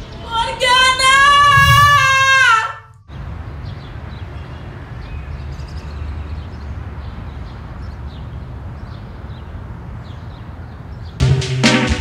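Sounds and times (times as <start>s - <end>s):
low outdoor background hum: 0.0s - 11.2s.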